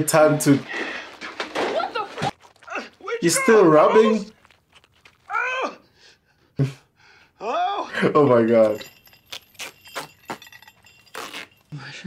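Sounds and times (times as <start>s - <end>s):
metal chains clinking: 8.3s - 12.0s.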